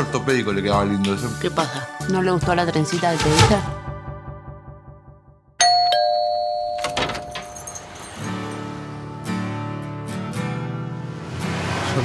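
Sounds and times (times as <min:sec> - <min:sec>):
two-tone doorbell chime: 0:05.6 - 0:08.5.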